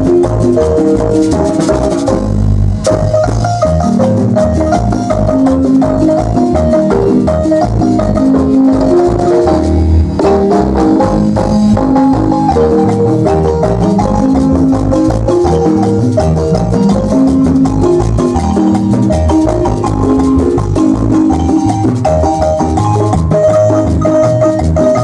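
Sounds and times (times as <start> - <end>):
marimba dance music: 0.0 - 25.0.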